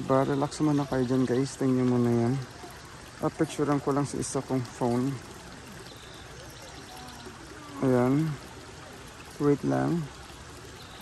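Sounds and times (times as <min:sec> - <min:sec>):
stream trickling: 0:00.0 - 0:11.0.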